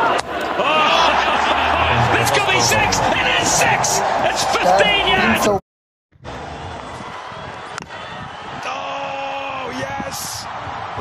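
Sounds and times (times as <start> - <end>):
excited overlapping voices: 0.0 - 5.6.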